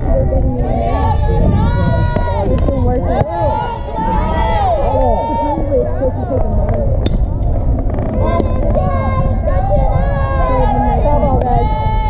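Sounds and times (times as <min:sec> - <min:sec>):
high voices calling and cheering: 0:00.0 - 0:12.0
wind rumble on microphone: 0:00.0 - 0:12.0.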